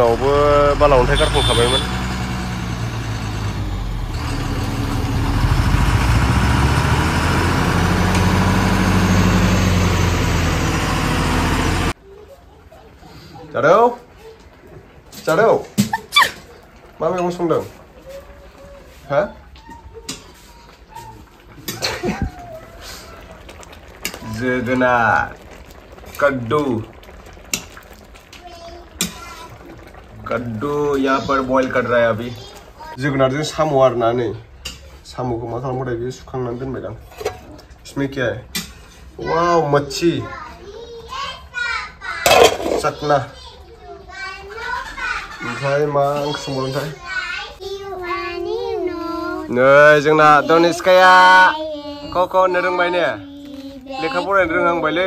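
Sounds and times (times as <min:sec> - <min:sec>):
diesel truck engine running: 0:00.0 - 0:12.0
pot of food bubbling: 0:00.0 - 0:40.2.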